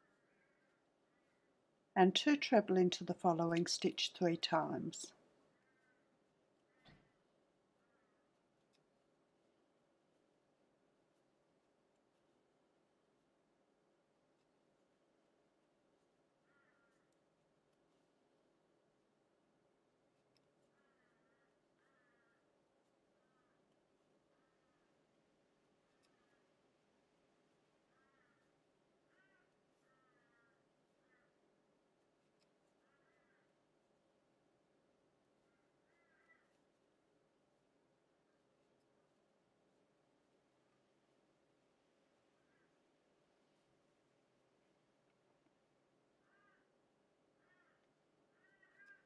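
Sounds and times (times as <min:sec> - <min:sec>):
distant bird calls: 0:05.4 - 0:08.4, 0:16.4 - 0:17.2, 0:20.7 - 0:22.5, 0:23.2 - 0:23.6, 0:24.3 - 0:25.0, 0:27.8 - 0:31.4, 0:32.7 - 0:33.6, 0:35.4 - 0:36.6, 0:46.2 - 0:49.0
distant animal calls: 0:16.5 - 0:17.1, 0:27.9 - 0:28.5, 0:29.1 - 0:31.4, 0:35.5 - 0:36.5, 0:46.2 - 0:46.7, 0:47.4 - 0:49.0.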